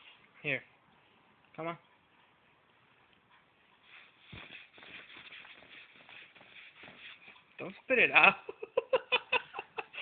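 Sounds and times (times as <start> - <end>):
rustling and shuffling: 0.0 - 8.2.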